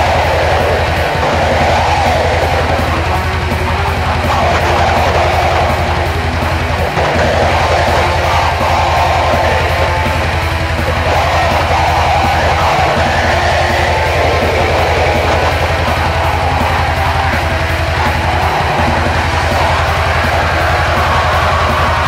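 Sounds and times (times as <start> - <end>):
distorted guitars: 0.0 - 22.0
fast kick drum strokes: 0.0 - 22.0.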